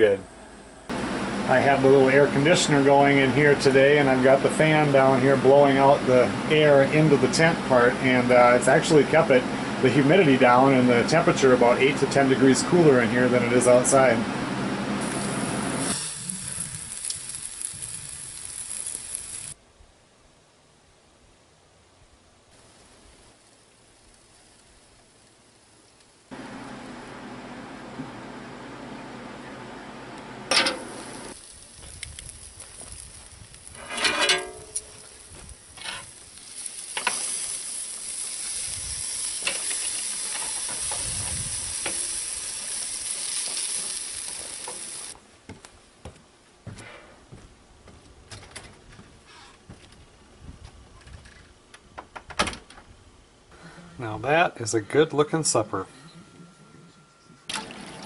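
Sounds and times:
meat sizzling on a grill: 14.9s - 19.6s, 22.6s - 26.3s, 30.5s - 45.2s
scrape on grill: 15.0s - 19.6s, 30.5s - 45.2s.

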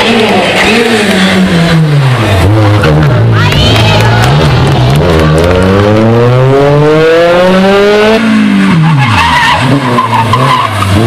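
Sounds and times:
car engine slowing down: 0.0s - 8.9s.

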